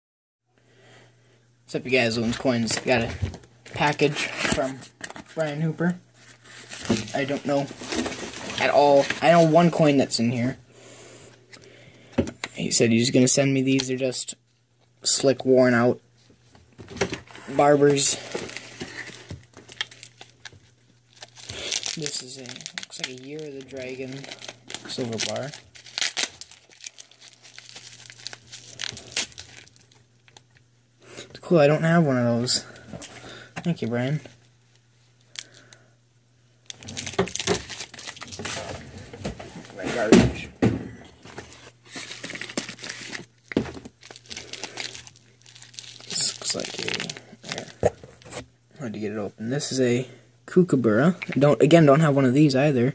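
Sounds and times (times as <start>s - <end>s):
plastic packaging rustling: 2.0s - 10.4s, 16.8s - 30.6s, 36.6s - 40.2s, 41.2s - 48.5s
plastic bag crinkling: 5.1s - 9.8s, 17.4s - 30.6s, 36.6s - 39.0s, 41.3s - 48.4s.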